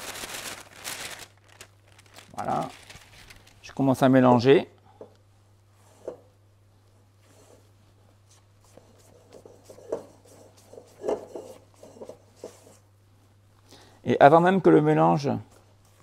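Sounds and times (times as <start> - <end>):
spatula scraping metal bowl: 8.7 - 12.8.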